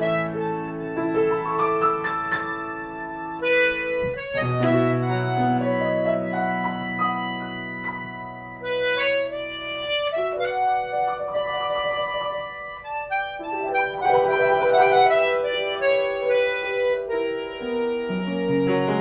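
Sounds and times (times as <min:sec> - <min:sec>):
button accordion playing: 0:00.0 - 0:19.0
piano accompaniment: 0:00.0 - 0:19.0.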